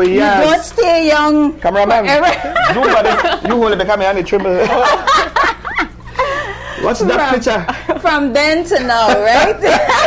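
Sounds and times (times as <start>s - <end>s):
people talking: 0.0s - 5.2s, 6.7s - 10.0s
people laughing: 2.1s - 10.0s.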